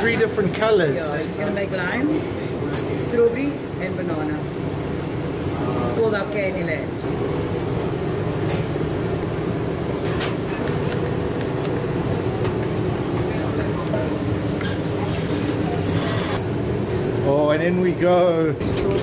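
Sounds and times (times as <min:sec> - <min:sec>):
kitchen machinery humming: 0:00.0 - 0:19.0.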